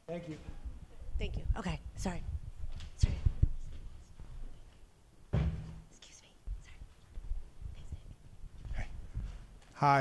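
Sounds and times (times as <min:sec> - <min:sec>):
soft low thuds: 0:00.4 - 0:09.6
faint whispering: 0:05.9 - 0:07.0, 0:07.6 - 0:09.1.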